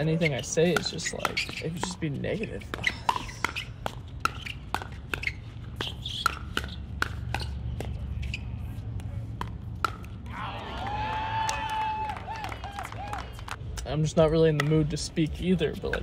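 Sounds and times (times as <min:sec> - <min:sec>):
paddles hitting plastic ball: 0:00.4 - 0:08.0, 0:08.9 - 0:10.4, 0:15.8 - 0:16.0.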